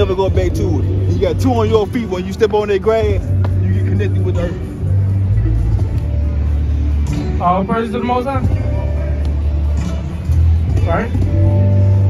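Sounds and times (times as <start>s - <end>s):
faint music: 0.0s - 12.0s
low street rumble: 0.0s - 12.0s.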